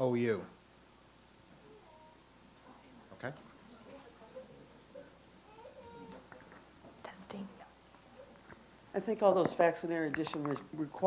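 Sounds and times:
faint indistinct voices: 1.5 - 8.6.

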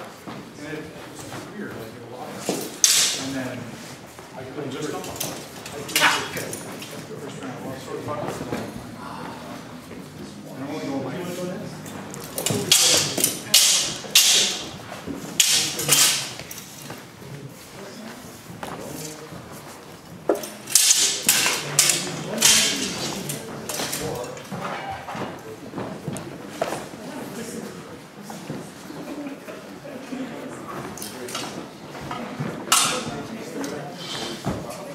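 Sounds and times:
background voices: 2.0 - 15.0
swords clashing: 2.6 - 3.4, 5.1 - 7.0, 12.1 - 16.8, 20.4 - 24.1.

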